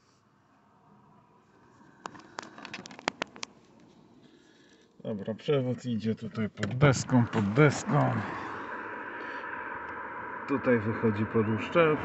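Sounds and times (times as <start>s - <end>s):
faint cabin background: 3.2s - 8.6s.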